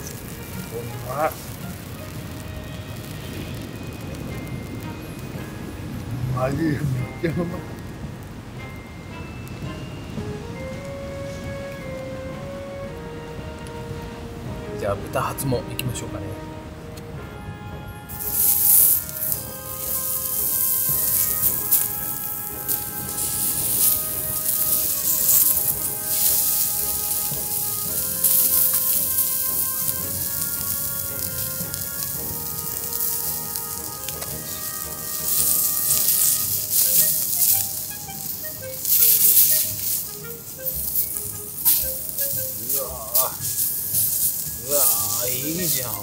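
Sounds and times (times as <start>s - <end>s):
meat sizzling on a griddle: 0.0s - 4.9s, 18.1s - 46.0s
background music with held notes: 0.0s - 46.0s.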